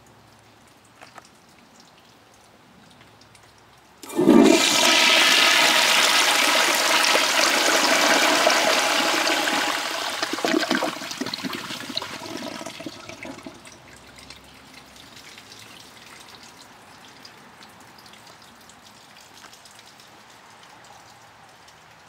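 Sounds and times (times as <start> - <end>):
toilet flushing: 4.0 - 13.7.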